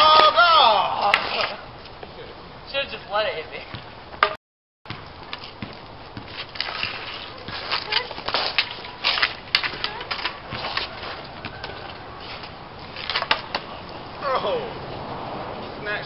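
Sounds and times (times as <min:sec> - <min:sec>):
hockey sticks clacking on concrete: 0:00.0 - 0:02.0, 0:05.3 - 0:14.0.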